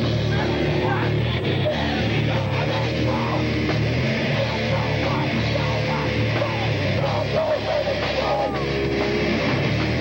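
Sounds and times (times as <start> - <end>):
distorted electric guitar: 0.0 - 10.0
punk band playing live: 0.0 - 10.0.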